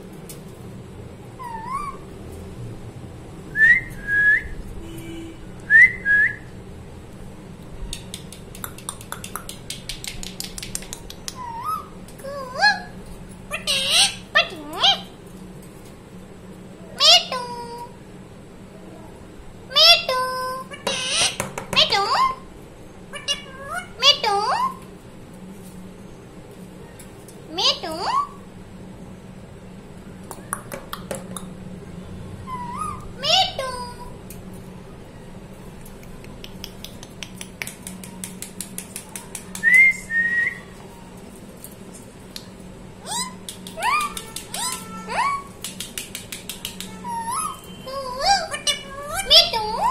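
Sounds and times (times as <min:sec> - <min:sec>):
parakeet whistling: 0:01.4 - 0:02.0, 0:32.5 - 0:33.4, 0:43.0 - 0:45.5, 0:47.0 - 0:49.9
parakeet calls: 0:01.4 - 0:02.1, 0:11.3 - 0:15.2, 0:19.7 - 0:22.5, 0:23.1 - 0:24.8, 0:32.4 - 0:34.1, 0:43.0 - 0:45.7, 0:46.6 - 0:49.9
parakeet clicking: 0:07.9 - 0:11.6, 0:35.8 - 0:39.8, 0:43.2 - 0:47.5.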